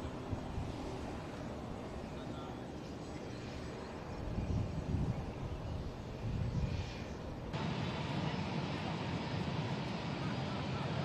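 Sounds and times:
aircraft engines rumbling: 0:00.0 - 0:11.0
outdoor background: 0:00.0 - 0:11.0.

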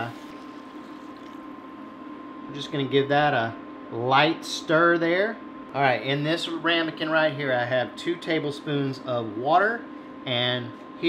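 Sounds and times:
liquid sizzling: 0:00.0 - 0:01.9
water pouring into a hot pot: 0:00.3 - 0:01.6.

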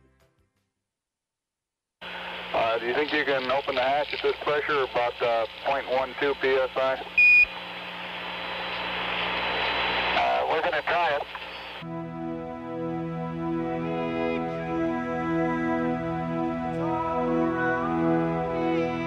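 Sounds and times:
radio static hiss and hum: 0:02.0 - 0:11.8
voices over radio: 0:02.5 - 0:07.2, 0:08.5 - 0:11.8.

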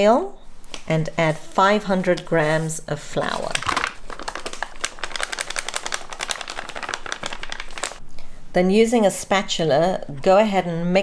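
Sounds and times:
flour bag crinkling: 0:03.2 - 0:08.0.

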